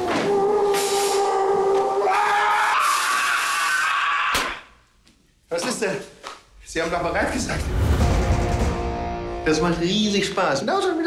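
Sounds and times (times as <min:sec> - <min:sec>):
sharp crash: 0:06.8 - 0:10.2.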